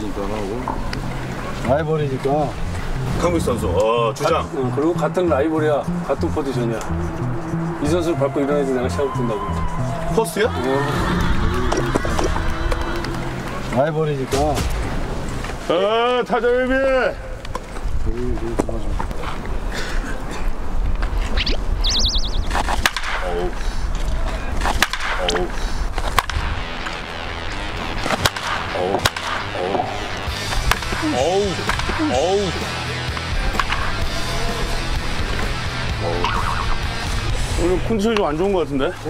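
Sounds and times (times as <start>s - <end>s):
background music: 0.0s - 15.8s, 26.0s - 39.0s
baseball bat hitting balls: 22.5s - 23.3s, 24.6s - 26.8s, 28.0s - 32.1s, 33.0s - 34.2s.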